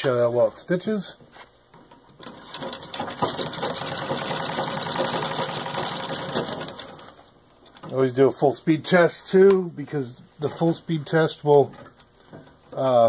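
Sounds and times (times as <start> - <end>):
treadle sewing machine stitching: 2.2 - 7.2.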